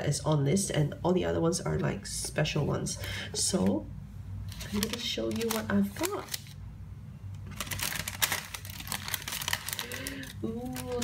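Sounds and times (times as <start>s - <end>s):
tissue paper rustling and crinkling: 4.5s - 6.6s, 7.5s - 11.0s.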